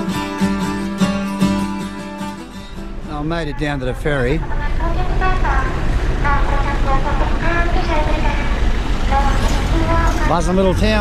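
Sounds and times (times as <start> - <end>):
steady low rumble: 2.7 - 11.0
voices talking: 2.9 - 11.0.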